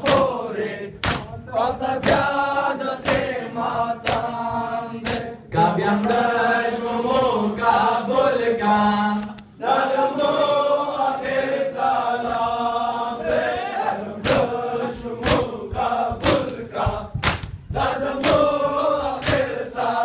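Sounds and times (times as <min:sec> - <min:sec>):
men chanting a lament: 0:00.0 - 0:20.0
hands striking chests: 0:17.2 - 0:17.6.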